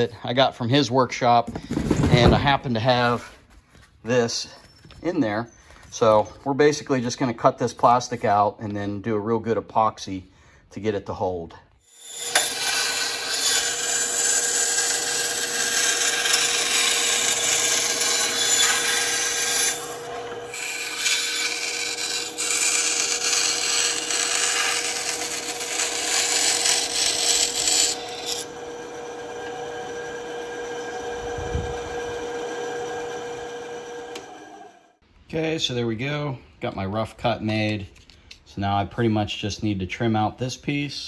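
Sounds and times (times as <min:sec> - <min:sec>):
band saw humming: 0:11.9 - 0:34.9
saw blade rasping through plastic: 0:12.2 - 0:28.4.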